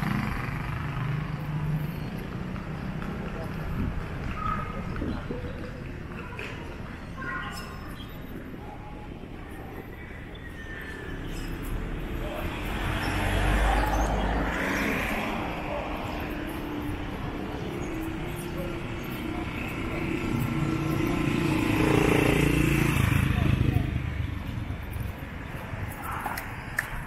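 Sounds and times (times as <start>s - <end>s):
motor vehicles passing: 0.0s - 8.6s, 9.4s - 27.0s.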